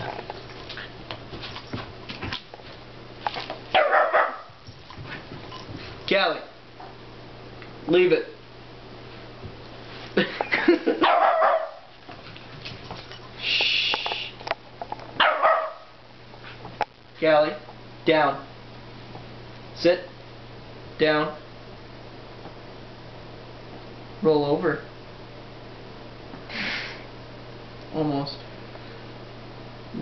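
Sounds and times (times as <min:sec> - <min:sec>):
light scuffling: 0:00.0 - 0:06.2, 0:09.1 - 0:10.7, 0:11.4 - 0:15.2
dog play barking: 0:03.3 - 0:06.1, 0:11.0 - 0:13.3, 0:15.2 - 0:16.0
dog barking: 0:03.7 - 0:04.6, 0:11.0 - 0:11.9, 0:15.2 - 0:16.0.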